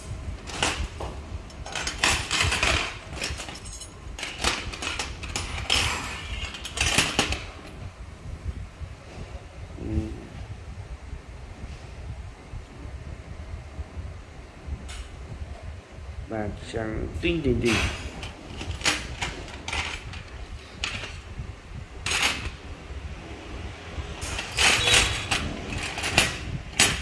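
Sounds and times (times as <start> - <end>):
low steady rumble: 0.0 - 27.0.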